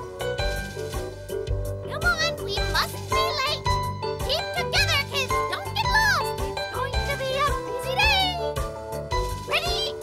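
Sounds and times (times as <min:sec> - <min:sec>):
upbeat children's music: 0:00.0 - 0:10.0.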